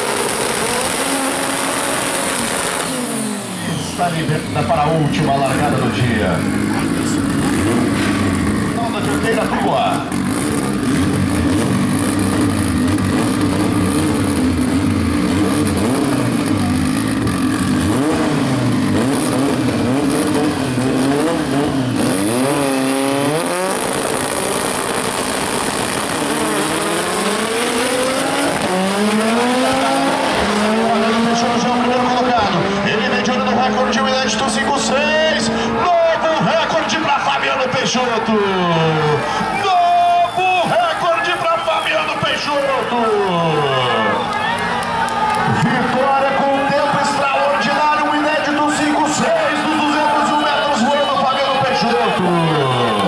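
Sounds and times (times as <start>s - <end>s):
racing car engines revving: 0.0s - 53.0s.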